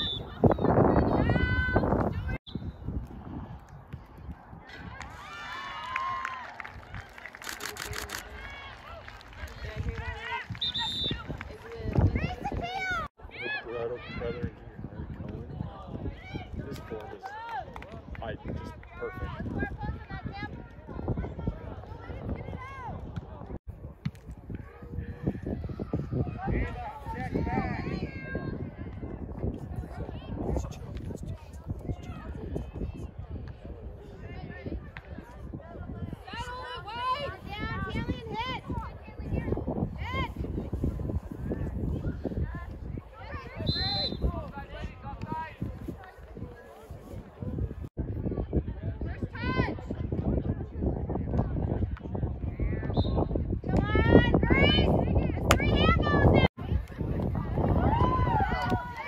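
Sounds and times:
spectators cheering and shouting: 0:53.8 - 0:59.0.

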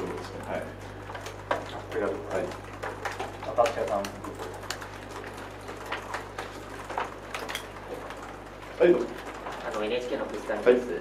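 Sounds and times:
laptop keyboard typing: 0:00.0 - 0:10.8.

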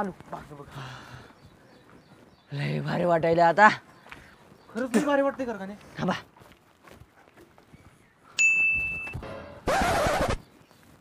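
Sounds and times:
bright ding: 0:08.4 - 0:09.6.

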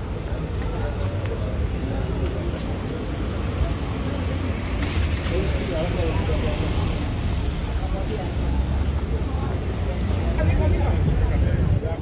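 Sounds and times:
chatter of passers-by: 0:00.0 - 0:12.0
low rumble of road traffic: 0:00.0 - 0:12.0.

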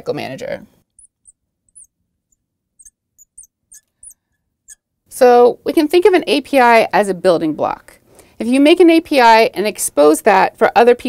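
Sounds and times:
marker squeaking on glass: 0:00.9 - 0:04.9.

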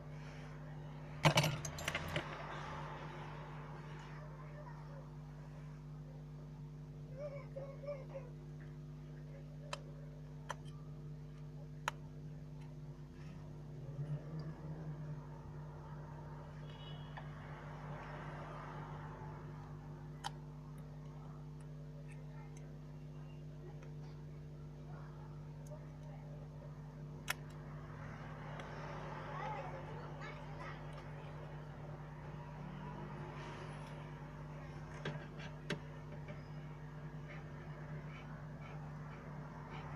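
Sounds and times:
low electrical hum: 0:00.0 - 0:39.9.

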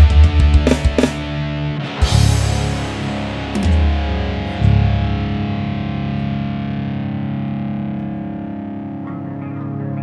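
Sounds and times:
distorted electric guitar chord ringing: 0:00.0 - 0:10.0.

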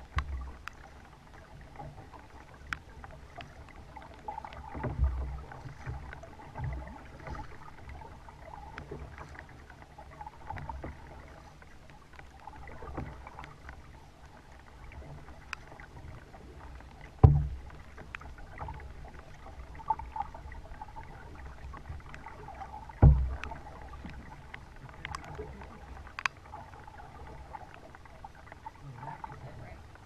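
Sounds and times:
water drips: 0:00.0 - 0:30.0
water rumbling on kayak hull: 0:00.0 - 0:30.0.

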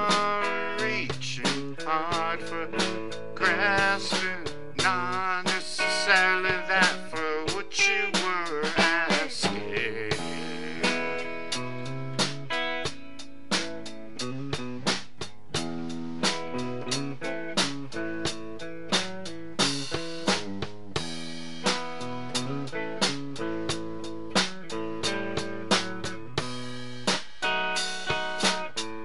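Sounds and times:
drum kit steady beat: 0:00.0 - 0:29.0
strummed guitar chords: 0:00.0 - 0:29.0.

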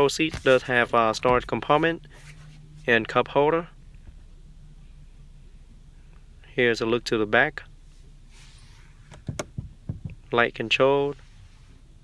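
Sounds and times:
faint rustle: 0:00.0 - 0:03.1, 0:07.8 - 0:09.1.

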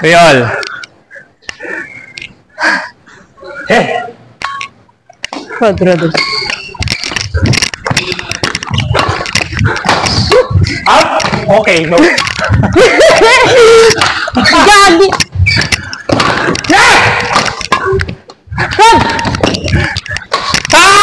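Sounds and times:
players' voices and calls: 0:00.0 - 0:21.0.

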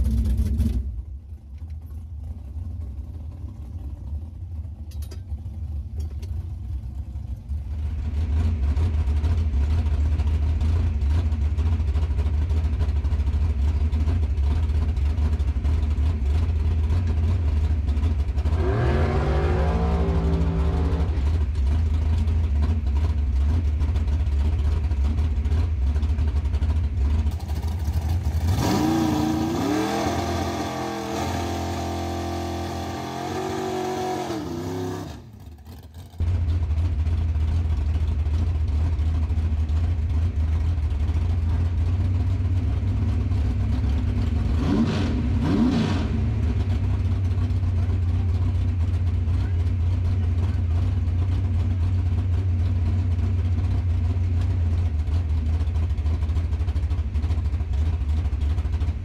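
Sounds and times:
car engine rumbling: 0:00.0 - 0:59.0.

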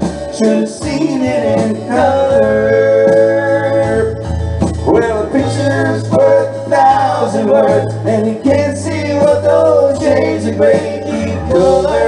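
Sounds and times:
guitars: 0:00.0 - 0:12.0
live band playing country song: 0:00.0 - 0:12.0.

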